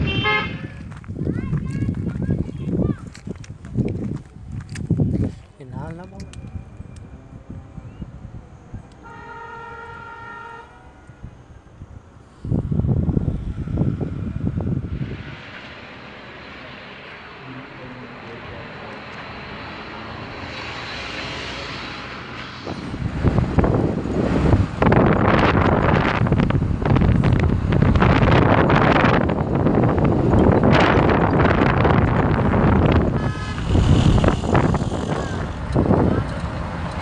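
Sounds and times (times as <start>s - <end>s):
vehicle horn: 0.0s - 0.8s, 9.0s - 11.4s, 32.8s - 35.5s
wind rumble on microphone: 0.0s - 9.1s, 11.0s - 15.8s, 22.5s - 37.0s.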